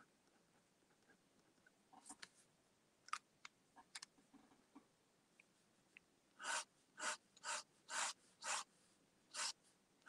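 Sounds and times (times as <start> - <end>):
pen scratching on paper: 6.4 - 8.7, 9.3 - 9.6.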